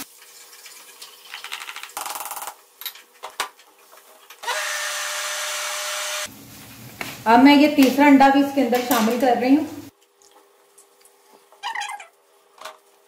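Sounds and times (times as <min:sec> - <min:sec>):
electric blender motor running: 0:04.4 - 0:06.3.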